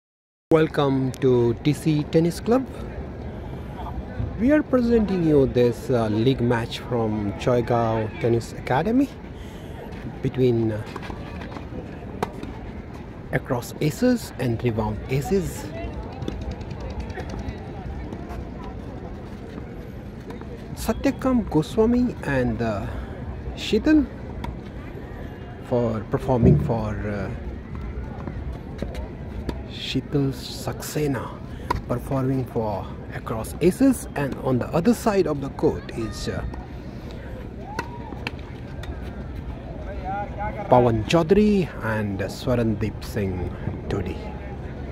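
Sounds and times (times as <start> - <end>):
faint distant voices: 0.8 - 44.9.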